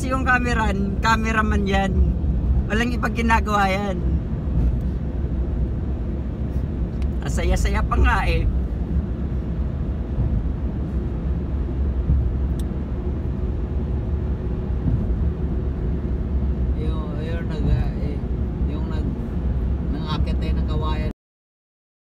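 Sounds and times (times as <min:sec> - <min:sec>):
car road noise rumble: 0:00.0 - 0:21.1.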